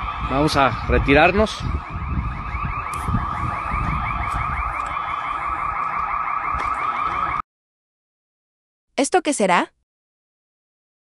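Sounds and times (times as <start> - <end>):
car alarm chirping: 0.0 - 7.4
low rumbling: 0.0 - 7.4.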